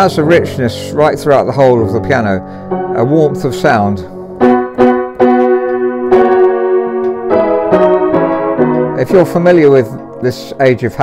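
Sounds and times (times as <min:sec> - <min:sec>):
out of tune piano chords: 0:00.0 - 0:11.0.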